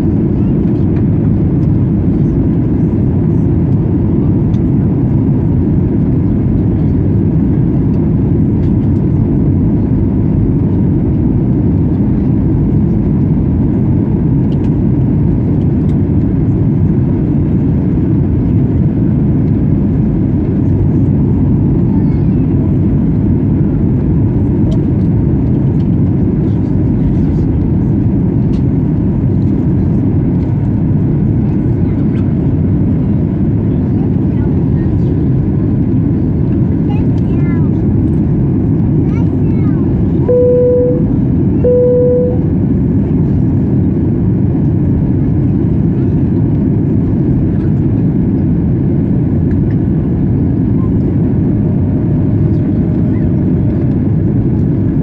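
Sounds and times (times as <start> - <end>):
airplane cabin engine roar: 0.0 - 55.0.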